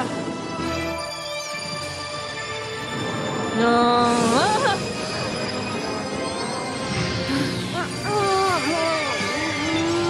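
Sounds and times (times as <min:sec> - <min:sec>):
gliding wavering magic tone: 0:00.8 - 0:10.0.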